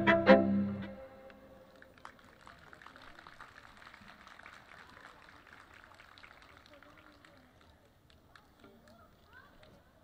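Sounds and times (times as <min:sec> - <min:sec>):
bowed string trio note: 0:00.0 - 0:01.3
faint crowd ambience: 0:00.0 - 0:10.0.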